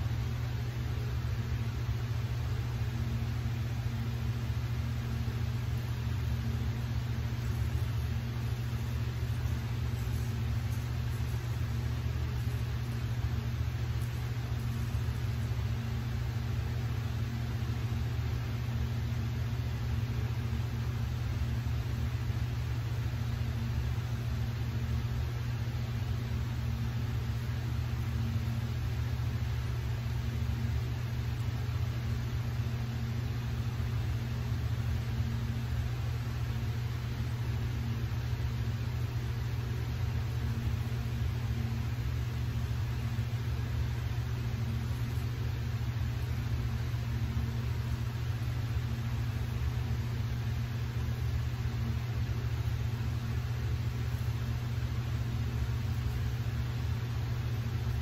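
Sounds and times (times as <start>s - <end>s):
low machine hum: 0.0s - 58.0s.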